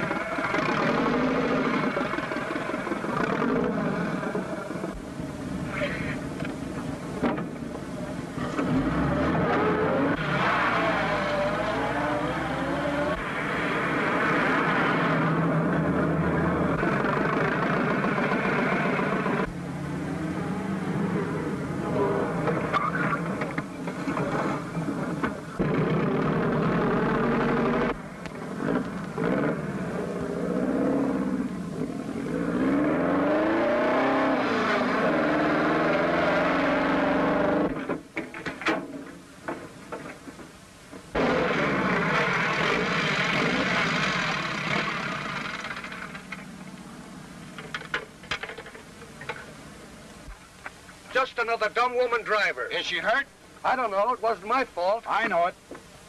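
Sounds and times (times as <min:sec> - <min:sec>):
car engine driven fast: 0:00.0 - 0:05.1, 0:08.4 - 0:38.0, 0:41.1 - 0:46.3.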